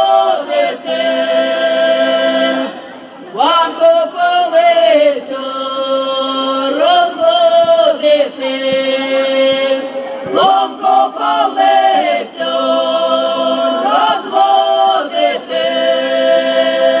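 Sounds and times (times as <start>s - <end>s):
folk ensemble singing together: 0.0s - 17.0s.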